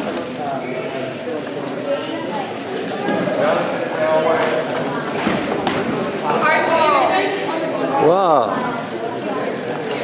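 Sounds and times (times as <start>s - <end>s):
chatter of voices in a hall: 0.0s - 10.0s.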